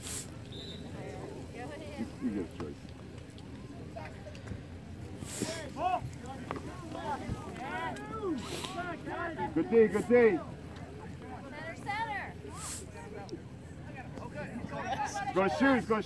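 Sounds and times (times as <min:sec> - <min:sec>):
outdoor background noise: 0:00.0 - 0:16.0
distant shouts and calls: 0:05.2 - 0:16.0.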